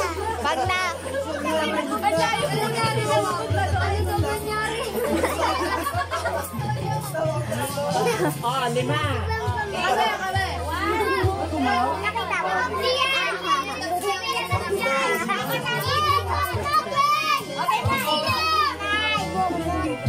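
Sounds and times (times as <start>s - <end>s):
children talking and laughing: 0.0s - 20.0s
music playing: 0.0s - 20.0s.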